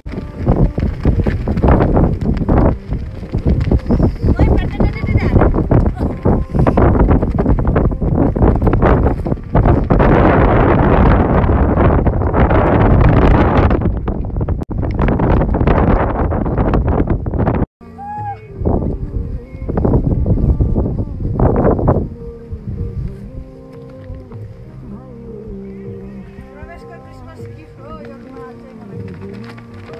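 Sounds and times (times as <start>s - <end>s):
wind buffeting microphone: 0.0s - 29.9s
faint music: 17.8s - 29.9s.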